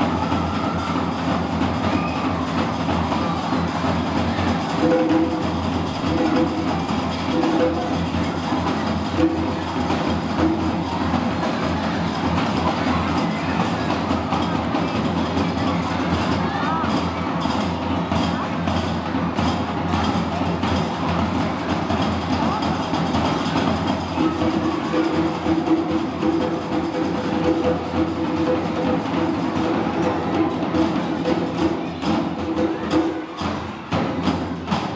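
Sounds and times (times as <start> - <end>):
crowd of children's voices: 0.0 - 34.9.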